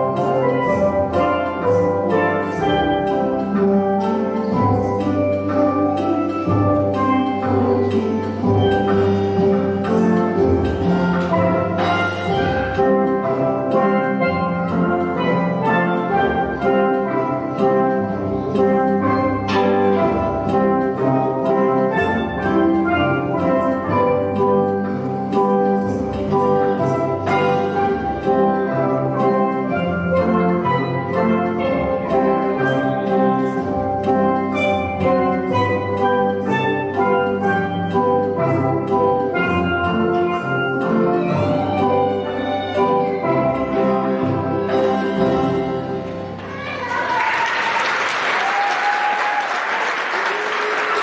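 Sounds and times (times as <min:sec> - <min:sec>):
steel drums playing a tune: 0:00.0 - 0:46.9.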